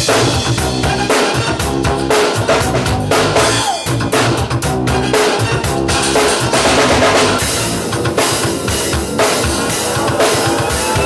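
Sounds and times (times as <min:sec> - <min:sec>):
drum kit playing a beat: 0:00.0 - 0:11.0
recorded pop song: 0:00.0 - 0:11.0.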